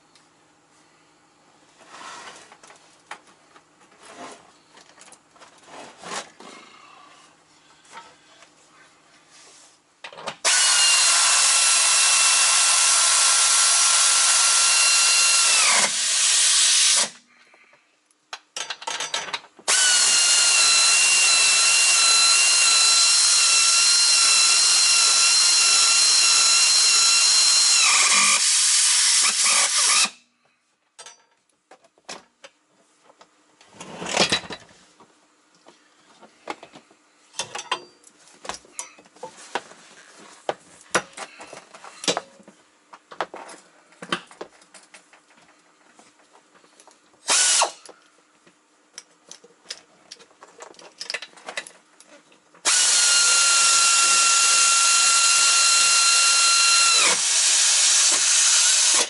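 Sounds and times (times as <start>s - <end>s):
pneumatic tool whining: 10.4s - 17.2s, 19.7s - 30.2s, 47.2s - 47.9s, 52.6s - 59.0s.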